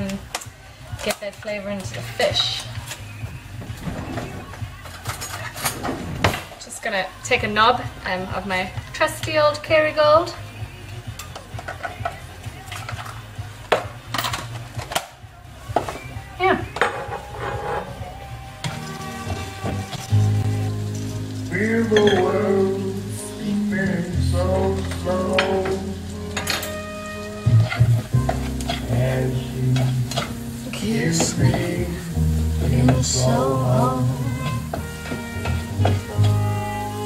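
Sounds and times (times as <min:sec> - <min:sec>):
music with steady bass line: 0:07.3 - 0:37.0
onions sizzling in a frying pan: 0:14.8 - 0:37.0.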